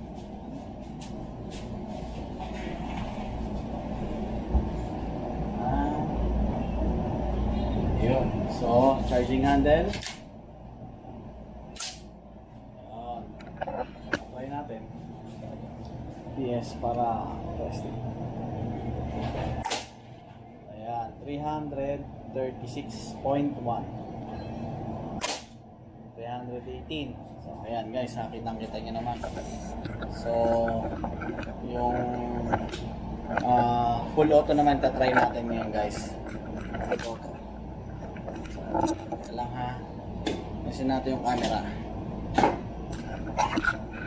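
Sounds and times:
low background rumble: 0.0 - 44.0.

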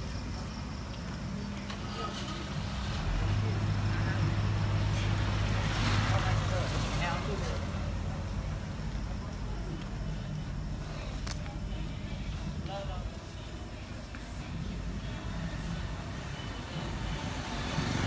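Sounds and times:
voices in background: 0.0 - 18.0
vehicle passing by: 1.7 - 9.0, 16.7 - 18.0.

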